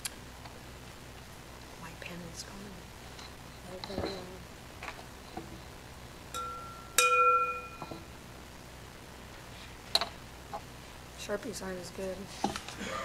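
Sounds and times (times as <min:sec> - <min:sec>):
metal singing bowl ringing: 0:06.3 - 0:08.0.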